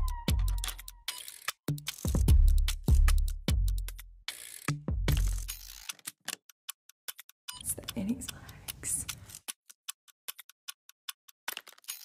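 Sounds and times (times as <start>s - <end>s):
fast ticking clicks: 5.2s - 12.0s
person's voice: 7.6s - 9.2s.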